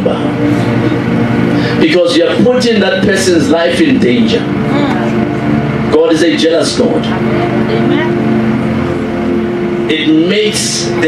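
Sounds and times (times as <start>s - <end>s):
loud droning tone: 0.0s - 11.0s.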